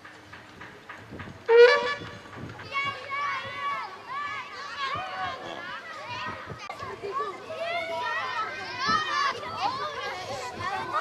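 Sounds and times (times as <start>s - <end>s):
children chattering and calling out: 2.2s - 11.0s
child shouting: 2.7s - 11.0s.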